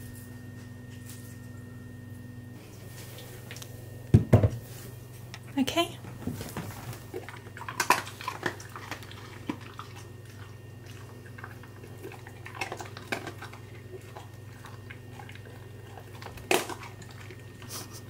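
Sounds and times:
dog crunching dry kibble: 6.7 - 17.9.

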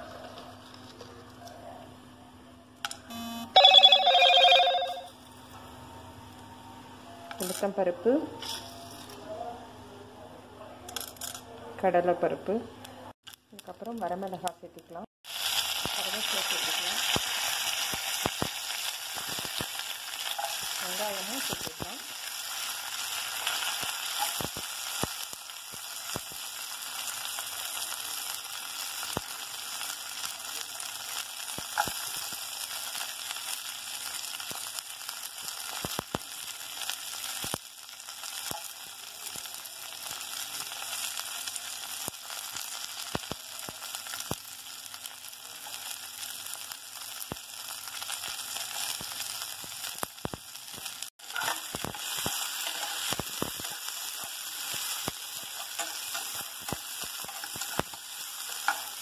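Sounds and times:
food frying in hot oil: 15.2 - 59.0
oil popping and crackling: 15.2 - 59.0.

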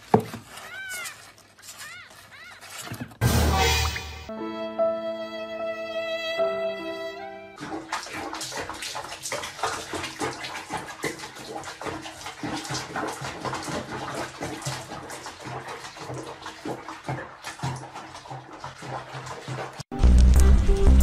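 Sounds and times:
background music: 3.2 - 7.6, 19.9 - 21.0
water splashing in sink: 7.6 - 19.9.

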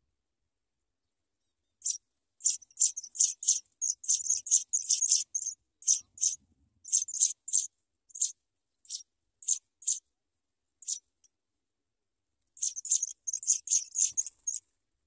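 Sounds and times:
nestlings begging calls: 1.8 - 8.3, 8.9 - 10.0, 12.6 - 14.6.

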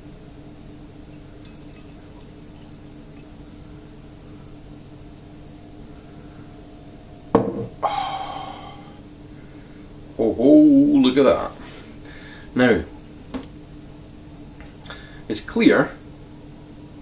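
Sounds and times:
faint steady hum: 0.0 - 17.0
beer pouring into a glass: 1.0 - 3.4.

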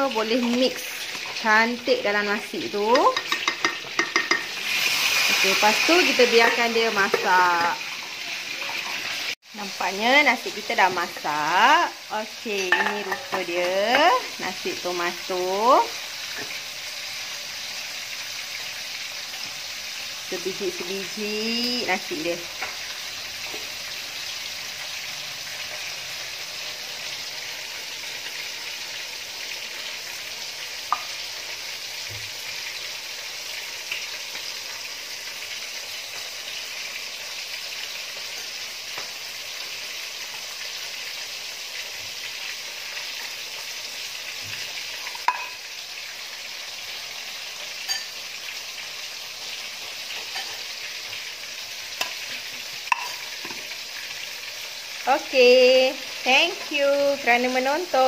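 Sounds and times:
rice paddle knocking pot and plate: 3.1 - 4.5, 45.2 - 45.6, 52.9 - 53.6.

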